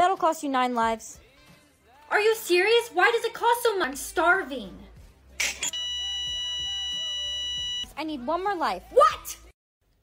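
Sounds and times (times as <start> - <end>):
steady electronic beep: 5.6 - 7.9.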